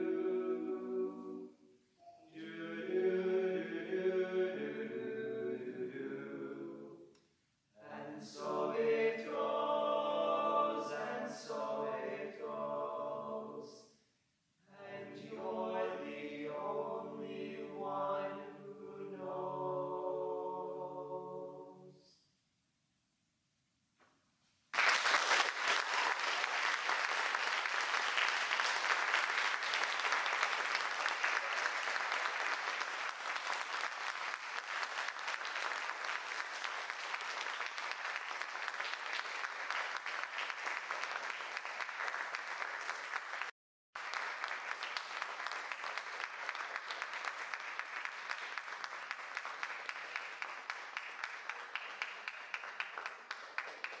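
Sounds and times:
audience applauding: 24.7s - 54.0s.

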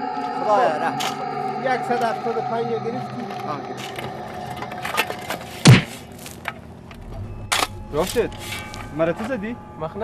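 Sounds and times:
digging tool striking stony earth: 5.6s - 6.0s.

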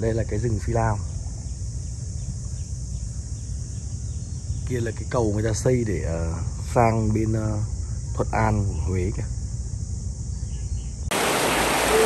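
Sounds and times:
low rumble with high hiss: 0.0s - 12.0s
stream rushing over rocks: 11.1s - 12.0s.

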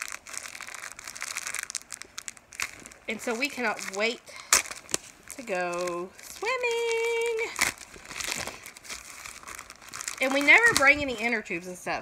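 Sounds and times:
thin plastic crinkling: 0.0s - 11.5s.

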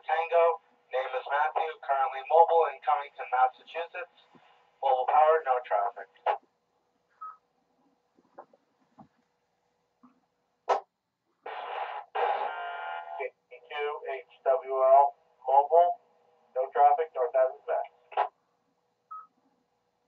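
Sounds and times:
voice over radio: 0.0s - 4.2s, 4.8s - 6.4s, 13.0s - 16.0s, 16.6s - 18.3s
steady radio tones: 0.0s - 6.5s, 11.4s - 18.3s
radio click: 17.8s - 18.4s.

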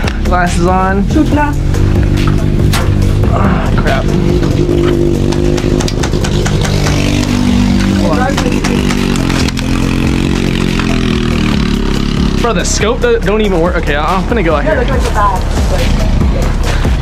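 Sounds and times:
go-kart engine revving: 1.6s - 16.4s.

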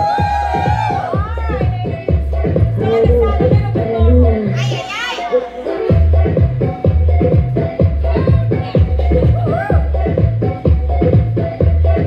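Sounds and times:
latin dance-fitness music: 0.0s - 12.0s
high-pitched voices crying out: 9.2s - 10.0s.

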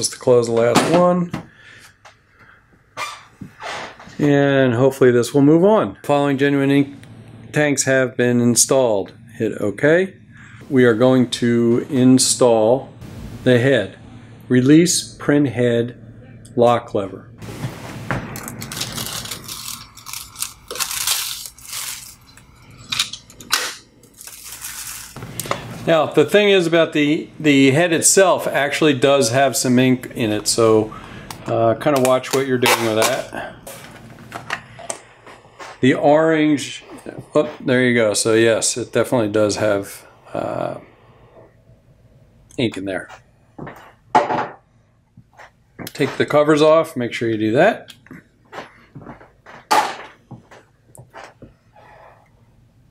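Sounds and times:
plastic packaging clattering: 17.7s - 25.5s.

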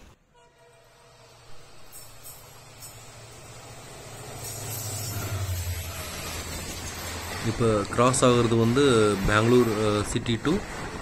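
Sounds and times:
diesel locomotive engine drone: 0.0s - 11.0s
train rail noise: 0.0s - 11.0s.

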